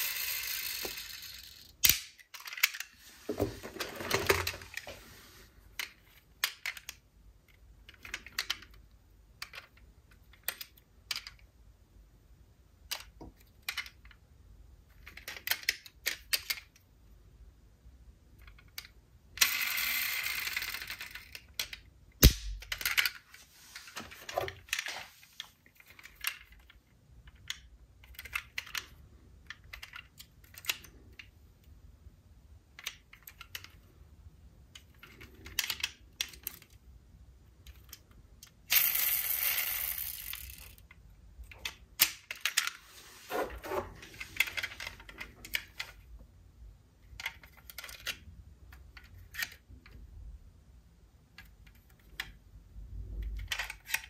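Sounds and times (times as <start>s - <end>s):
metal toy cars clicking: 0.0s - 2.9s, 5.7s - 11.5s, 14.9s - 16.8s, 18.3s - 21.9s, 22.6s - 23.2s, 25.8s - 31.3s, 32.7s - 33.9s, 34.7s - 36.8s, 37.6s - 42.8s, 47.0s - 50.0s, 53.0s - 54.0s.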